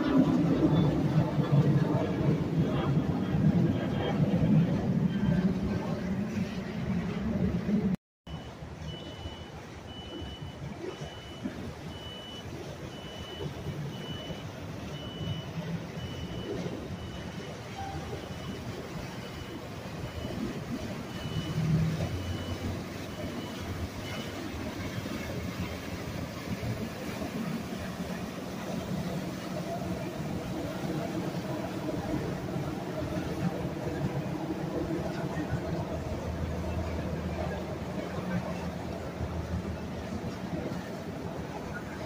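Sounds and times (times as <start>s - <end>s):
boat engine rumble: 0.0s - 42.0s
high electronic beep: 8.3s - 24.4s.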